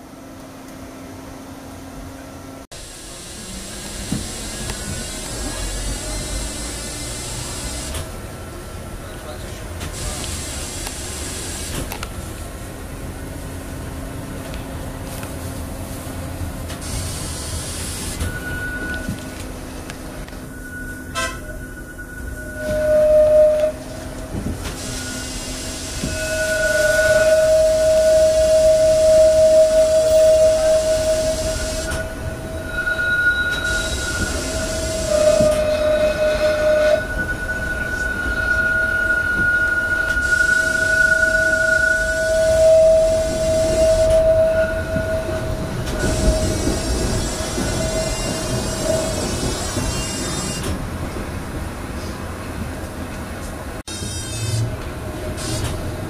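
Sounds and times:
tram running noise: 0.0s - 56.0s
tram wheels squealing: 3.1s - 12.1s, 16.7s - 51.4s, 53.9s - 56.0s.

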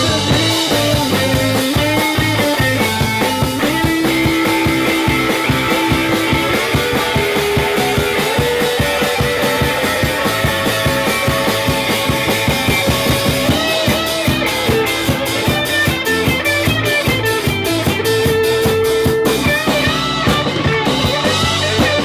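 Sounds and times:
drum kit beat: 0.0s - 22.0s
electric guitars sustained notes: 0.0s - 22.0s.

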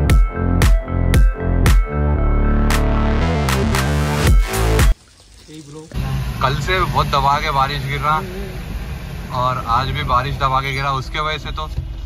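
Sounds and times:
electronic music with heavy bass beat: 0.0s - 5.0s.

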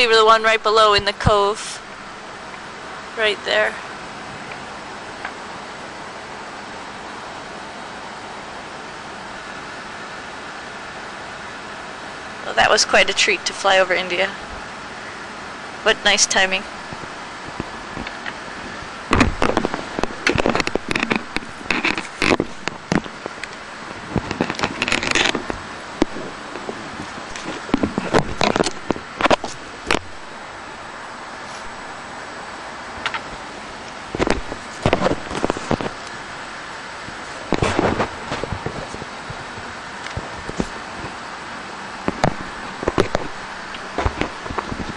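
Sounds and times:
ventilation fan hiss: 0.0s - 44.9s
crackling and sharp clicks: 19.1s - 30.2s, 33.0s - 36.2s, 42.0s - 44.9s.

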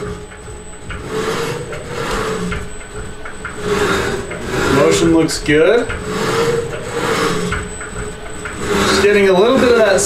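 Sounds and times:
milling machine servo whine: 0.0s - 10.0s.

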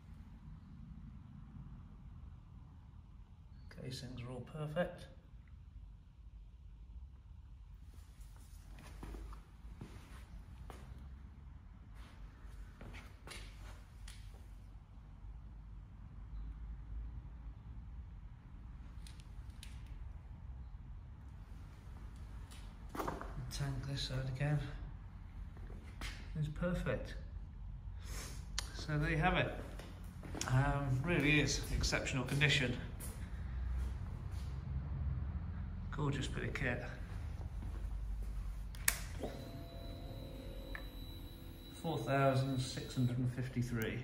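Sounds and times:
thin high whine: 39.2s - 43.4s.

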